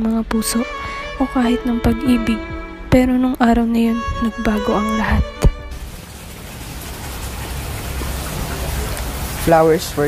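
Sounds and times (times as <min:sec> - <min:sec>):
outdoor background hiss: 0:00.0 - 0:10.0.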